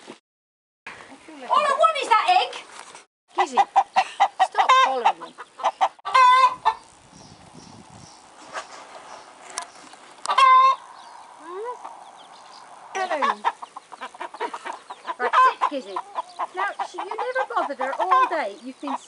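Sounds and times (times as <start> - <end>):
poultry clucking: 3.4 - 6.9, 8.5 - 19.0
poultry squawking: 3.4 - 7.0, 10.2 - 19.0.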